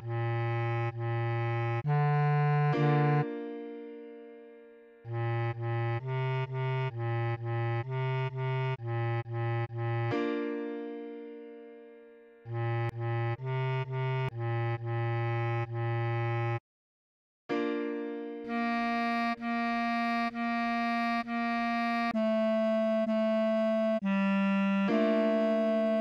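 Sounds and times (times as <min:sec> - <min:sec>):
bass clarinet repeated notes: 0:00.0 - 0:03.6, 0:05.0 - 0:11.0, 0:12.4 - 0:16.6, 0:18.4 - 0:26.0.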